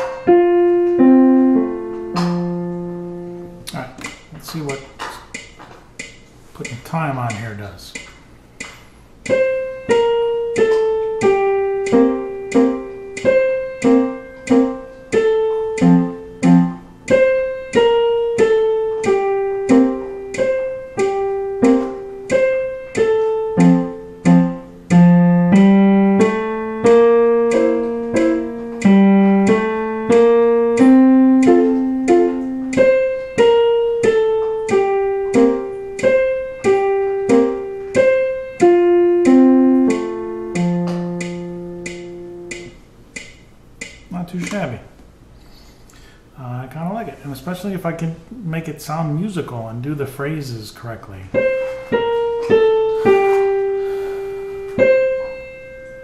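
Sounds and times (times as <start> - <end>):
piano waltz: 0.0 - 4.6, 9.2 - 43.0, 51.3 - 56.0.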